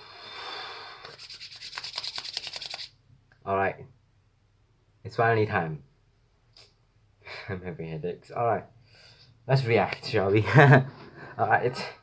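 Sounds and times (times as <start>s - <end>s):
hands rubbing together: 1.0s - 2.9s.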